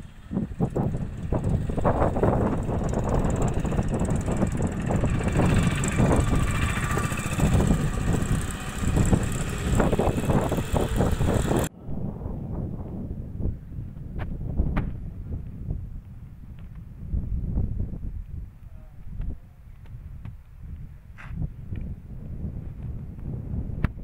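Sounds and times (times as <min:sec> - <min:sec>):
low rumbling outdoor noise: 0:00.0 - 0:19.6.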